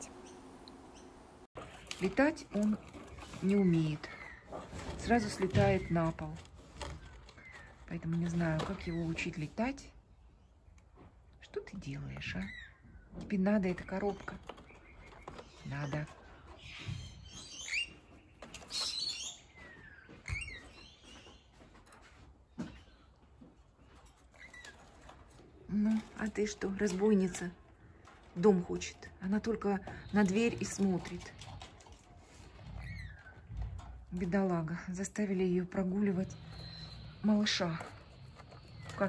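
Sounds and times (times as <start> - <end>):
parrots chirping and screeching: 0.2 - 9.5, 12.1 - 13.2, 13.8 - 21.4, 23.8 - 34.2, 35.6 - 39.0.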